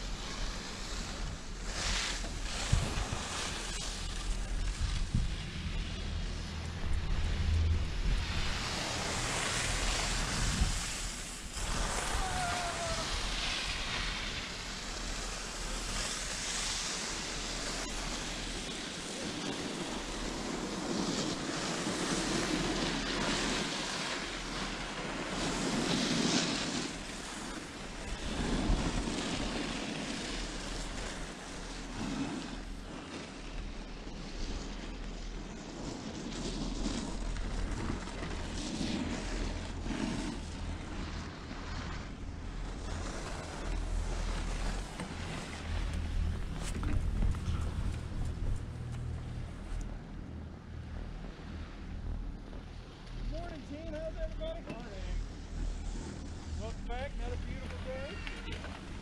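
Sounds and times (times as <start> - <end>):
wind buffeting microphone: 2.3 - 15.1, 40.4 - 50.9
low rumble: 2.4 - 16.1, 37.1 - 59.0.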